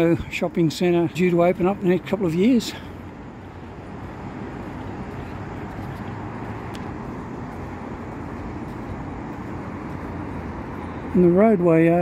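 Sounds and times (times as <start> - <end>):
freeway traffic rumble: 0.0 - 12.0.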